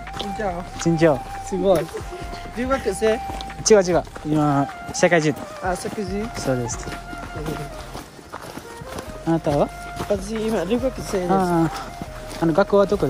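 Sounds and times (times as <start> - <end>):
background music: 0.0 - 13.0
voices talking: 0.0 - 13.0.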